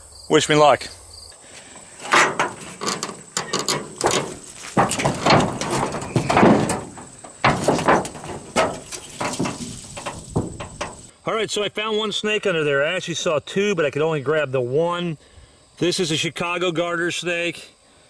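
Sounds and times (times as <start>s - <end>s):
tin sheets clanking and scraping: 1.9s - 11.1s.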